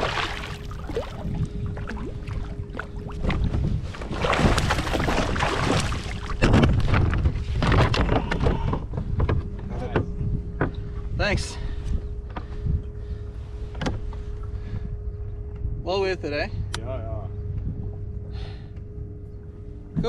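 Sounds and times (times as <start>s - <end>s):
water against kayak hull: 0.0s - 9.6s
wind on microphone: 0.0s - 15.9s, 16.6s - 18.3s
faint steady hum: 0.0s - 20.0s.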